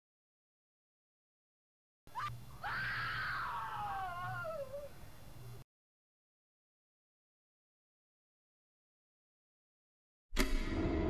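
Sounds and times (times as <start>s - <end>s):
person screaming into a whimper: 2.1s - 4.9s
low hum: 10.4s - 11.0s.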